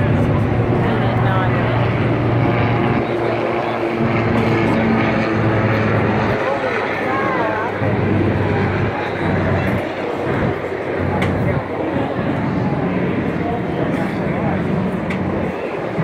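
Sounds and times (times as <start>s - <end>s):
heavy engines droning: 0.0s - 16.0s
people's voices: 0.0s - 16.0s.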